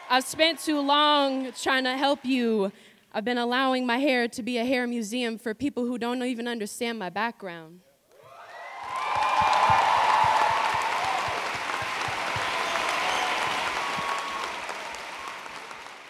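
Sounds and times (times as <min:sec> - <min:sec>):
audience applauding: 0:00.0 - 0:02.2, 0:08.2 - 0:16.0.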